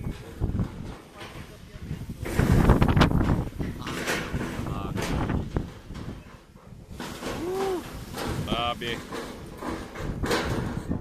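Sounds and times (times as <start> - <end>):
people talking: 3.8 - 5.2, 8.4 - 9.1.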